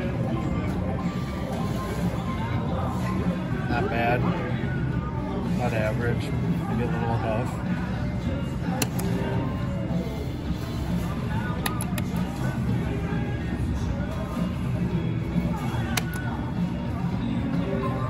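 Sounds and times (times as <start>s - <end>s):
sharp clicks: 15.9s - 16.3s.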